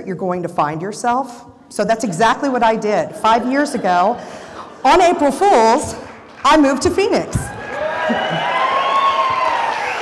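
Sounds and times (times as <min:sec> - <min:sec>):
audience cheering: 0:07.4 - 0:10.0
long whoop: 0:07.5 - 0:10.0.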